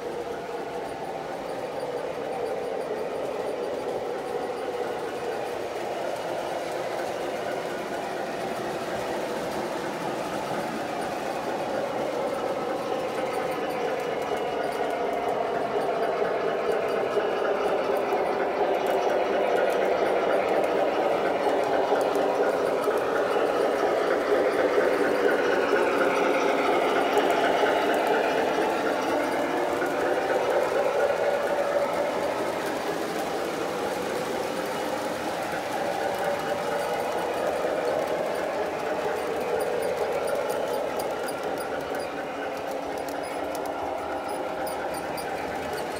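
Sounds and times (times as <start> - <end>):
model train motor whirring: 0.0 - 45.9
wheels clattering over rails: 0.0 - 45.9.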